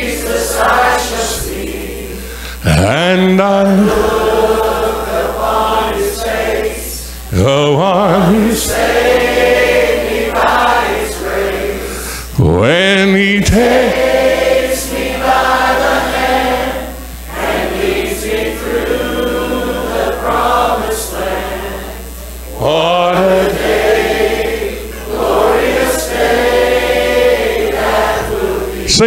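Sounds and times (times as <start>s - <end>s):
congregation singing a hymn: 0.0s - 29.0s
man singing into a microphone: 2.6s - 4.1s, 7.3s - 8.8s, 12.3s - 13.9s, 22.6s - 23.5s.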